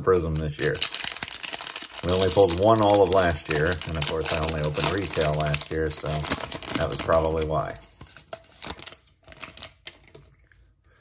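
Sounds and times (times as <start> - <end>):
foil wrapper crinkling: 0.1 - 10.3.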